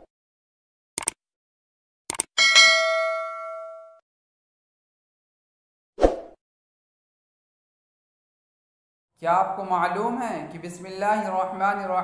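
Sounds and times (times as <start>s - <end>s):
bell ding: 2.4s - 4.0s.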